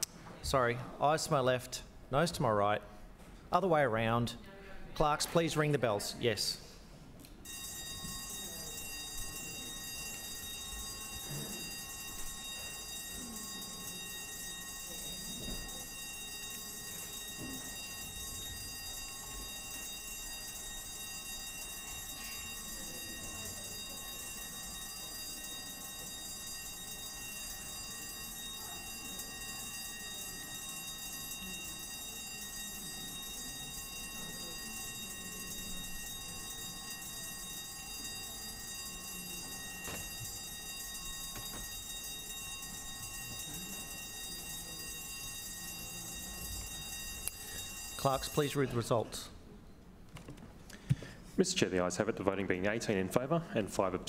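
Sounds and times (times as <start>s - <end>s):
bells ringing: 7.4s - 49.0s.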